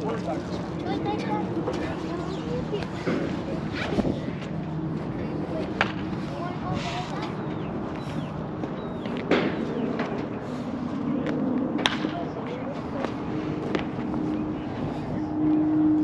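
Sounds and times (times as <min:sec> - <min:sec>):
distant indistinct voices: 0:00.0 - 0:16.0
low hum: 0:00.0 - 0:16.0.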